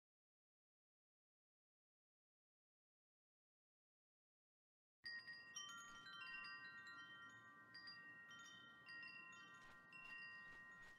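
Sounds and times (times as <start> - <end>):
wind chimes tinkling: 5.0 - 10.9.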